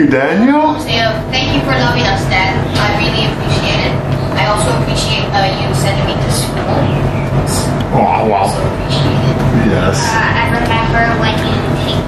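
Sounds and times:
indistinct voices: 0.0 - 12.0
steady low hum: 0.0 - 12.0.

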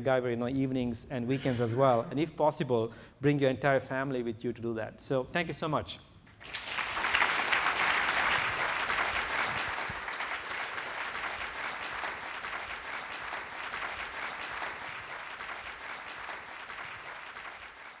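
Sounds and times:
audience applauding: 6.3 - 18.0.

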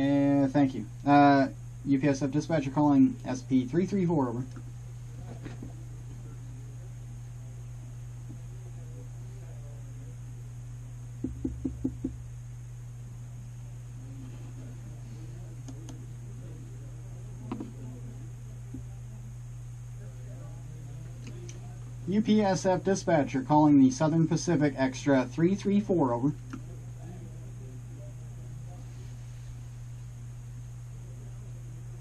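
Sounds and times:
low hum: 0.0 - 32.0
distant talk: 13.1 - 22.1, 26.6 - 32.0.

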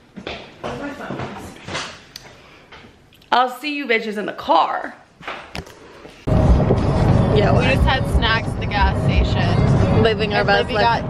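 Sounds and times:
car cabin road and engine rumble: 6.3 - 11.0.

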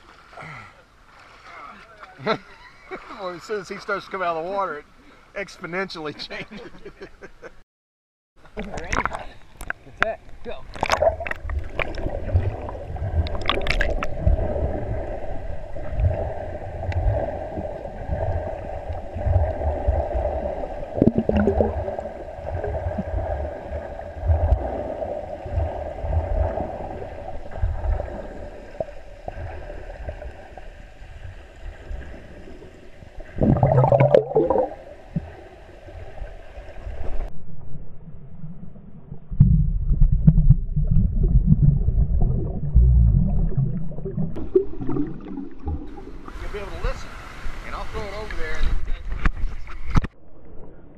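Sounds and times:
underwater hum: 8.4 - 50.9
water rumbling against camera: 8.4 - 50.9.

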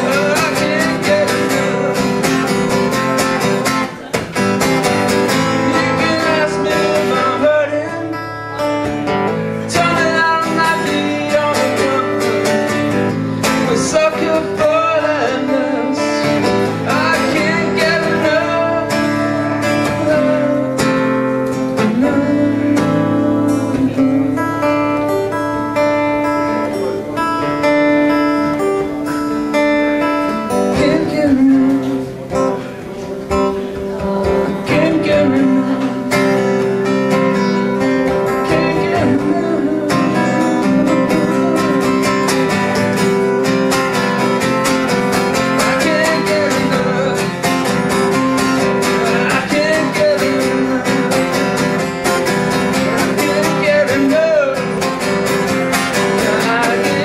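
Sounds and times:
man singing: 0.0 - 4.2, 4.8 - 57.0
acoustic guitar strumming: 0.0 - 57.0.

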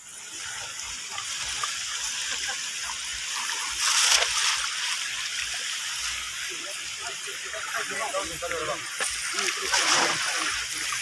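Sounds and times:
river water splashing and trickling: 0.0 - 11.0
loud water splash: 9.3 - 11.0.

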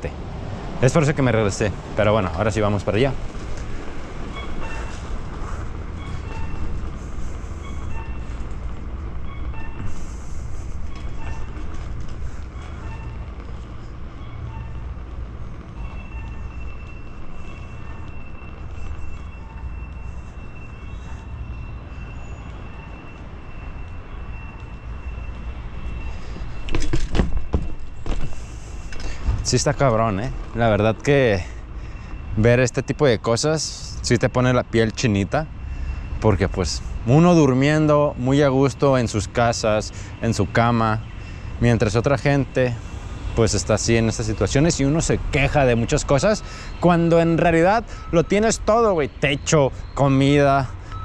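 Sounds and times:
bike knocks and rattles: 26.7 - 28.4.

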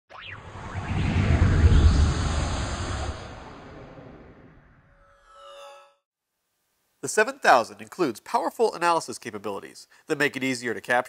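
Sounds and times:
rising sweep: 0.1 - 5.1
deep rumbling swell: 0.2 - 4.9.

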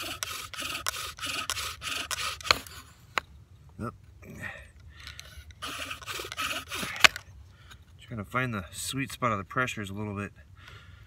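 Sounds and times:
wooden spindle rasping: 0.0 - 2.8, 5.4 - 7.2.

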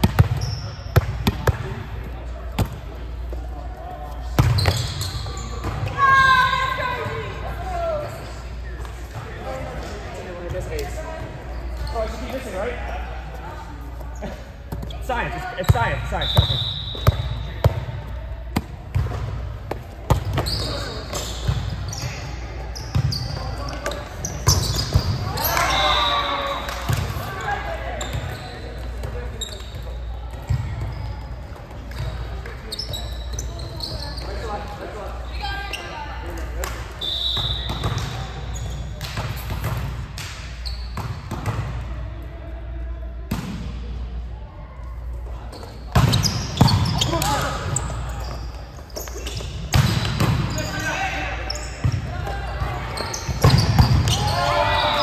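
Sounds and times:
sneakers squeaking on court: 0.0 - 2.8, 4.2 - 6.7, 9.7 - 36.3, 37.2 - 39.9, 40.5 - 41.7, 45.3 - 55.0
volleyball hits: 49.3 - 50.7, 51.8 - 54.9
players shouting: 53.5 - 55.0.

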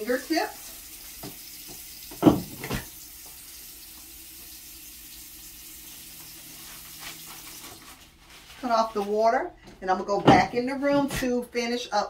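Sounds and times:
faucet running into sink: 0.0 - 7.7.

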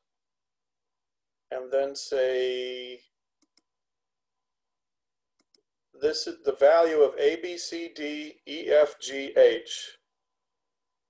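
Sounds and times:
computer mouse clicks: 3.4 - 3.7, 5.4 - 5.7.

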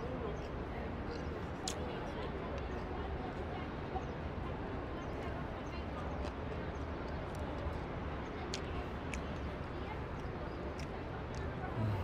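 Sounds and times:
murmur of diners' voices: 0.0 - 12.0.

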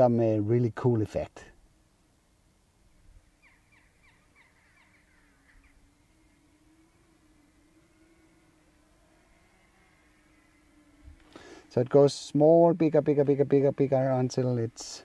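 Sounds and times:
faint steady low hum: 0.0 - 15.0
short quick bird calls: 3.3 - 5.9.

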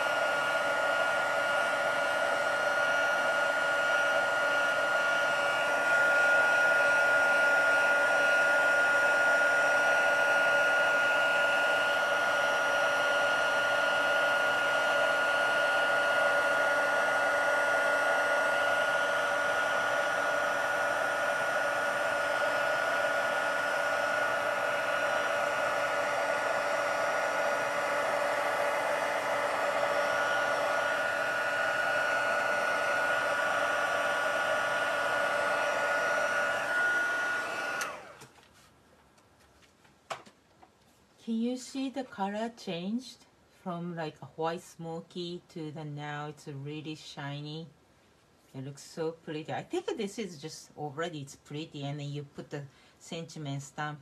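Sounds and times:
heat tool blowing with high whine: 0.0 - 38.3.

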